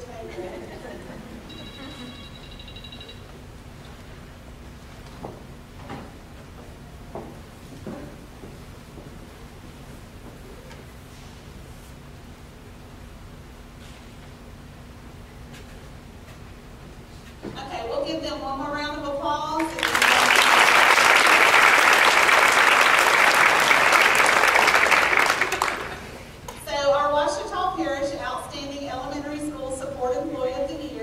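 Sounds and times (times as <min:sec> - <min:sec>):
short high electronic tone: 0:01.5 - 0:03.2.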